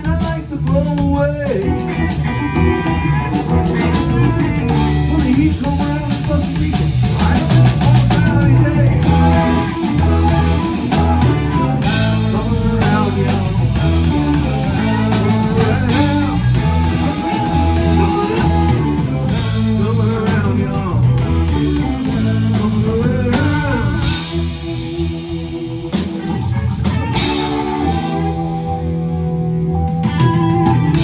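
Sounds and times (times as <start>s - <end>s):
electric guitar: 0.0s - 31.0s
live rock band playing: 0.0s - 31.0s.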